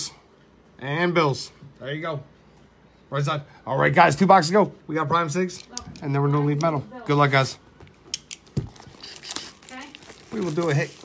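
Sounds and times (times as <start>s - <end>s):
packaging rustling: 8.3s - 11.0s.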